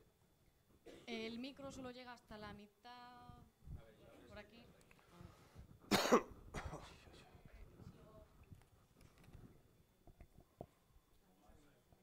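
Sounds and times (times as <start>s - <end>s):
person coughing: 0.9s - 1.2s, 5.9s - 7.0s
throat clearing: 5.9s - 7.0s.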